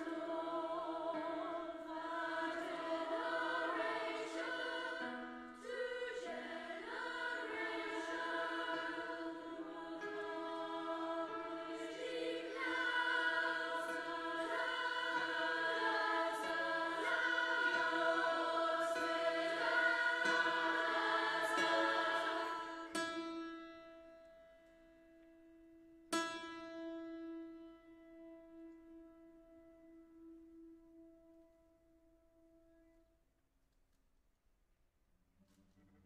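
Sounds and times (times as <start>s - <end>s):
children's choir singing held chords: 0.0s - 23.1s.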